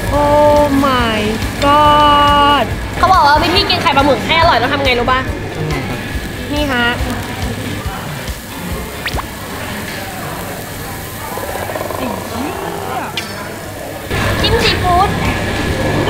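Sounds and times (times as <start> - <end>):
grill plate sizzling: 5.8 - 15.8.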